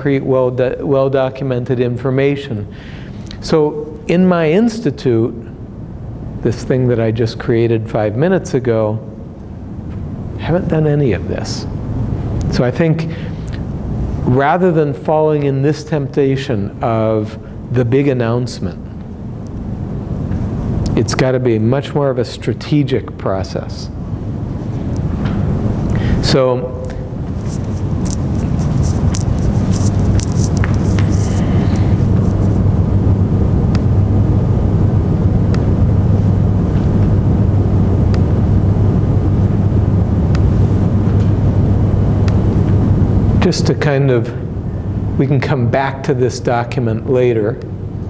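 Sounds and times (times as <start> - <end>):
room noise hum: 0.0 - 48.0
steady low rumbling noise: 0.0 - 48.0.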